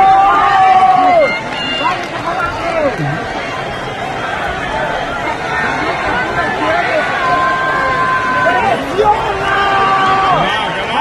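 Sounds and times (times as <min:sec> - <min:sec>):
crowd shouting and chattering: 0:00.0 - 0:11.0.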